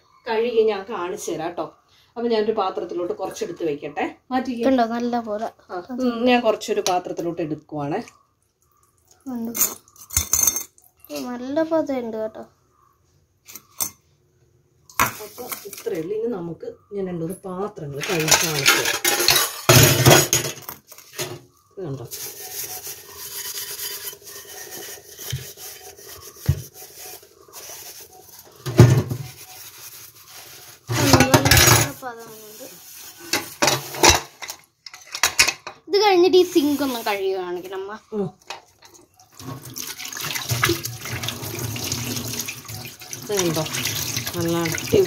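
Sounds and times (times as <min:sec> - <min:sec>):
metal bowl scrubbing: 0:15.0 - 0:16.2, 0:17.6 - 0:35.6, 0:36.3 - 0:45.0
tap water running into sink: 0:38.8 - 0:45.0.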